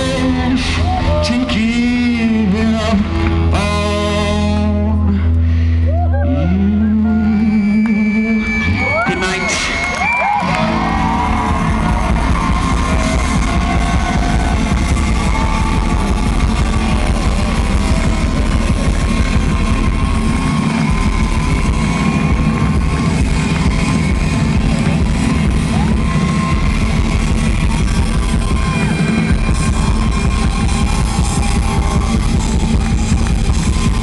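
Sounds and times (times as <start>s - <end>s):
live rock band playing: 0.0s - 5.0s, 8.0s - 34.0s
electric guitars ringing: 6.4s - 34.0s.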